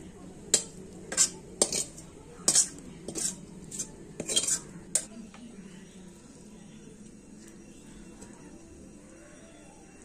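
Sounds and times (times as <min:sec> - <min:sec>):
metal spatula scraping wok: 0:00.5 - 0:05.1.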